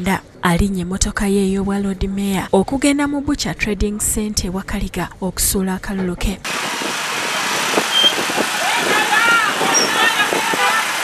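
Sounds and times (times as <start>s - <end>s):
people talking: 0.0s - 6.5s, 8.6s - 11.0s
vehicle moving on dirt road: 6.4s - 11.0s.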